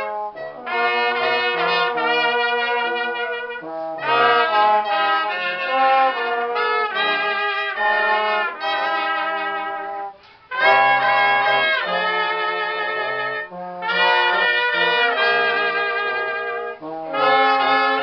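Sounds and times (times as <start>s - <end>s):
wind ensemble playing slow chords: 0.0s - 18.0s.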